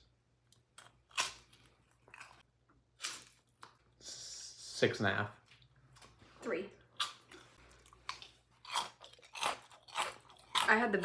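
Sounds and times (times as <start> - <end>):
crunching crisp fruit slices: 7.0 - 11.0.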